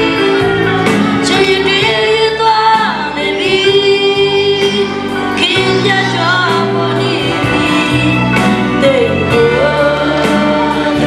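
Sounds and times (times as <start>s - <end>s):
boys singing gospel duet: 1.3s - 11.0s.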